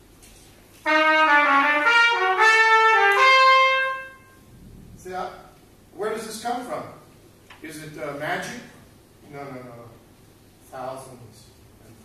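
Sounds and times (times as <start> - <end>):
solo trumpet: 0.8 - 4.5.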